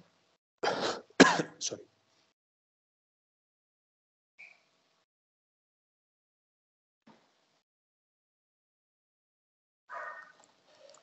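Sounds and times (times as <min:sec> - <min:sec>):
man clearing his throat: 0:00.6 - 0:01.8.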